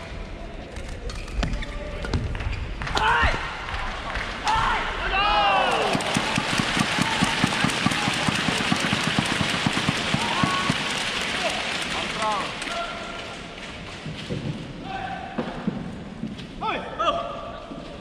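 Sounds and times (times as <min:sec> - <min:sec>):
crowd shouting and cheering: 0:02.1 - 0:13.7
crowd applause rhythmic clapping: 0:05.5 - 0:13.9.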